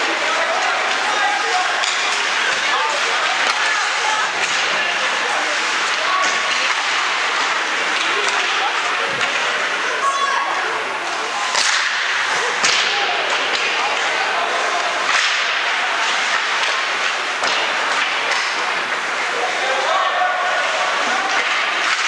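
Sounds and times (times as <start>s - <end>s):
hockey stick noise: 0.0s - 22.0s
skates scraping ice: 0.0s - 22.0s.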